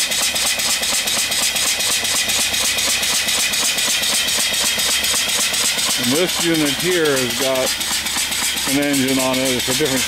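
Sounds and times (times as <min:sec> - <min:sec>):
steam engine exhaust hissing: 0:00.0 - 0:10.0
steam engine stroke beat: 0:00.0 - 0:10.0.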